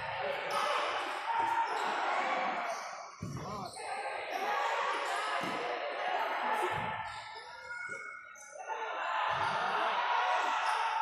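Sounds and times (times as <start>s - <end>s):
chatter and shouts: 0.0s - 11.0s
ball thudding on indoor court: 3.2s - 3.6s, 6.7s - 7.0s.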